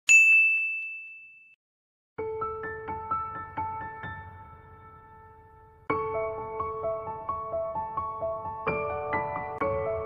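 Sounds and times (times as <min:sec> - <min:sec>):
bell-like ding: 0:00.1 - 0:01.6.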